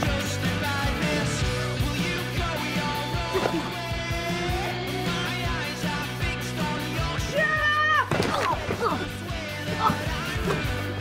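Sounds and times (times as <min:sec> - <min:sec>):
background music: 0:00.0 - 0:11.0
child shouting: 0:07.3 - 0:08.1.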